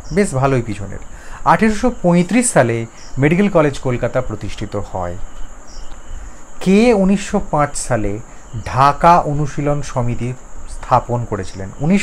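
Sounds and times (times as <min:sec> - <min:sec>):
man speaking: 0:00.0 - 0:05.3, 0:06.6 - 0:12.0
background hiss: 0:00.0 - 0:12.0
faint high-pitched whine: 0:00.0 - 0:12.0.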